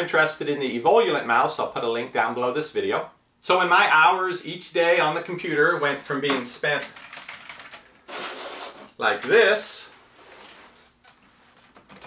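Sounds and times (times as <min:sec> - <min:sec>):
hands handling keyboards: 0:06.2 - 0:09.4.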